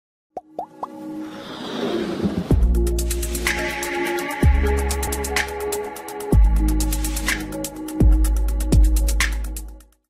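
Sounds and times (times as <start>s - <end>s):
musical riser: 1.0s - 6.3s.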